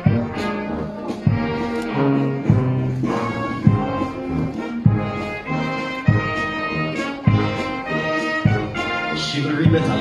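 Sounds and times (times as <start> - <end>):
brass marching band: 0.0 - 10.0.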